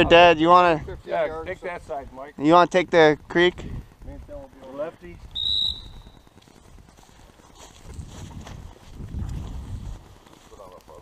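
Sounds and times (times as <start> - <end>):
high-pitched dog whistle blast: 5.4 - 6.1.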